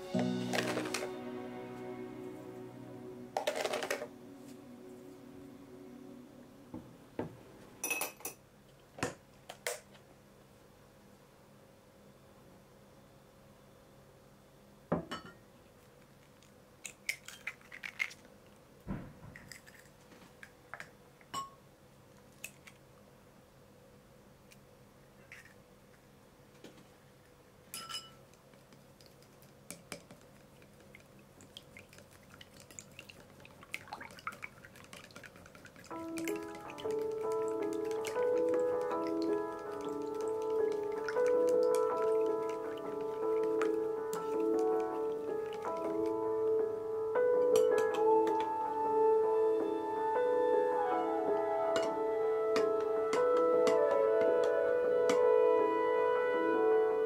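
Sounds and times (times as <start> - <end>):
background music: 0.0 - 7.8, 35.8 - 57.0
chopsticks beating eggs in bowl: 29.0 - 46.2.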